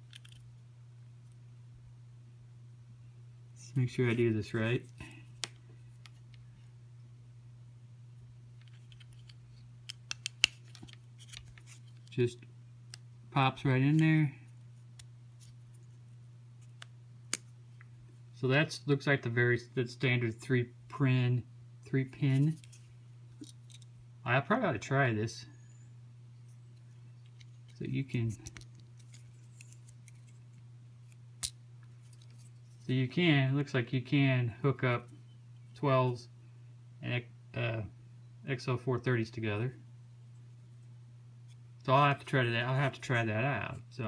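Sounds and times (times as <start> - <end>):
low steady hum: 0.0 - 44.0
plastic connector clicking into port: 9.9 - 10.9.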